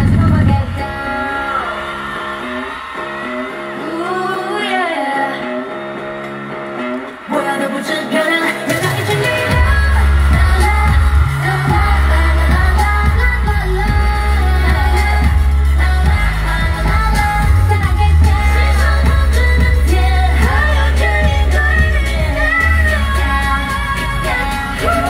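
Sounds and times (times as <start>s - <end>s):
heavy driving bass beat: 0.0s - 1.0s, 8.7s - 25.0s
pop song with sung vocals: 0.0s - 25.0s.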